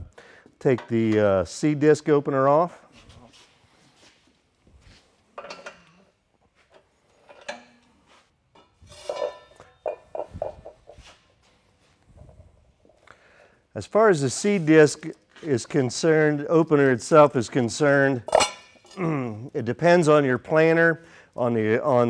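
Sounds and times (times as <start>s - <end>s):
steel parts clanking and scraping: 6.7s - 7.9s, 8.5s - 10.4s, 18.3s - 19.0s.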